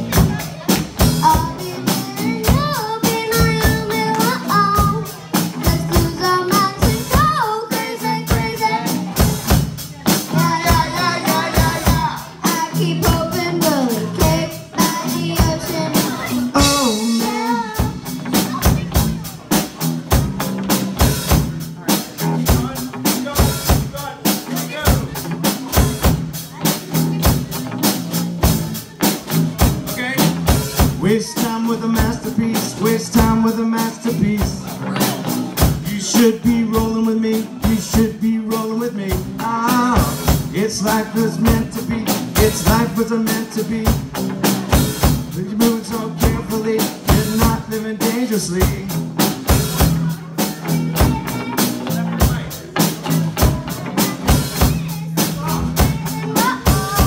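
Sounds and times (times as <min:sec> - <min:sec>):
drum kit beat: 0:00.0 - 0:57.0
electric bass: 0:00.0 - 0:57.0
person singing: 0:01.1 - 0:09.3, 0:10.1 - 0:18.5, 0:30.8 - 0:57.0.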